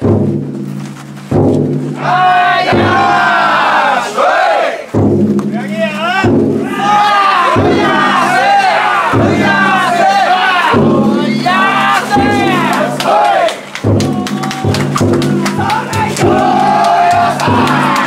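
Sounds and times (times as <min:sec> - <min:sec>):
big drum beaten slowly: 0:00.0 - 0:18.0
crowd shouting a chant: 0:02.0 - 0:04.9, 0:06.6 - 0:14.6, 0:15.2 - 0:18.0.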